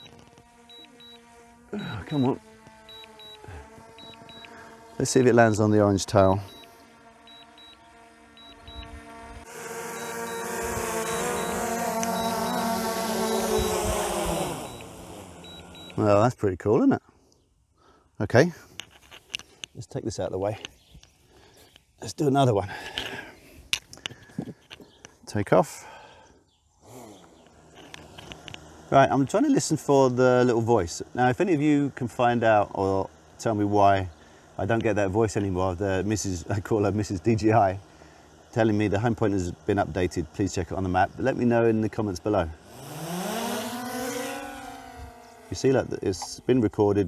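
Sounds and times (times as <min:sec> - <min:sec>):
drone motors whining: 0:00.0 - 0:16.3, 0:25.8 - 0:47.0.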